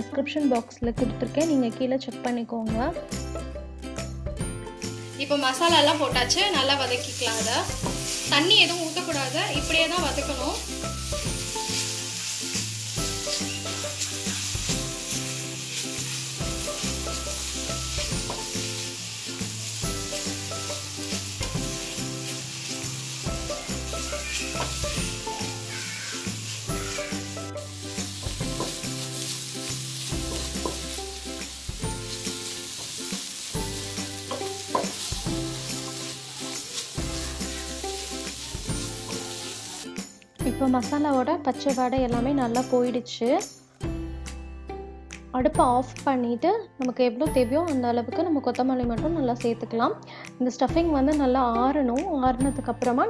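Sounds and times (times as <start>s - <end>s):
food sizzling in oil: 4.8s - 40.1s.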